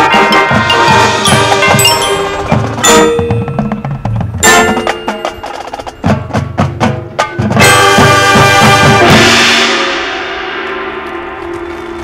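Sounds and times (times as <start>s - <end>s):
ringing bell-like tones: 0.0s - 6.4s
sharp percussion hits: 0.0s - 12.0s.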